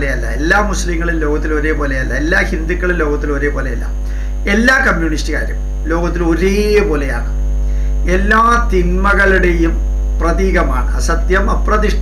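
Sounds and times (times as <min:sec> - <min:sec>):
man's voice: 0:00.0 - 0:07.3, 0:08.1 - 0:12.0
electrical mains hum: 0:00.0 - 0:12.0.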